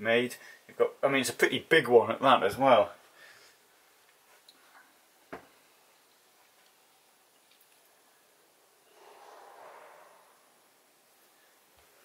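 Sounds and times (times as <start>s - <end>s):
soft rustling: 3.0s - 8.0s.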